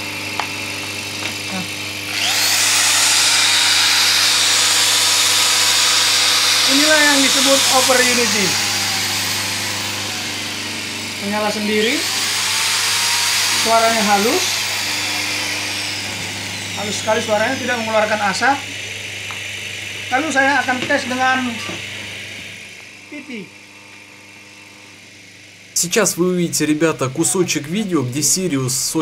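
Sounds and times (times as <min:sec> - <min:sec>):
electric motor whirring: 0:00.0 - 0:29.0.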